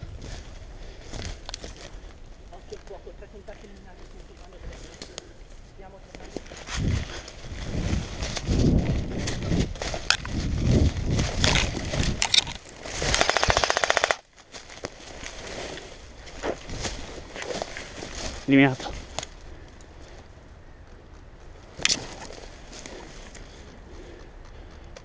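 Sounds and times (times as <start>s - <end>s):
rustling through undergrowth: 0.0s - 24.7s
airsoft gun full-auto burst: 13.1s - 14.2s.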